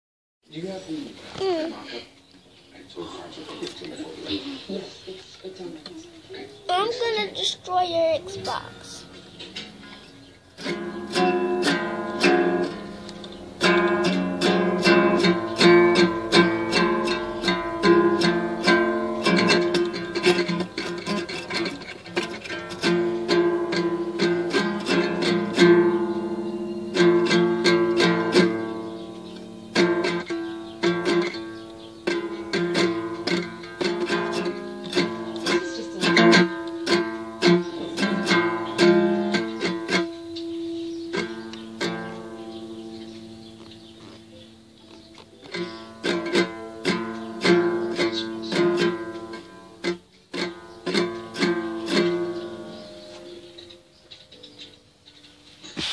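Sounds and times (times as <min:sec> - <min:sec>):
small acoustic guitar strummed: 0:06.7 - 0:54.8.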